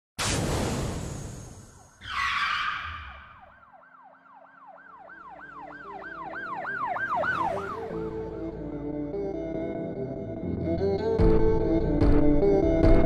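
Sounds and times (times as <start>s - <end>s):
siren-like warbling tone: 1.6s - 8.2s.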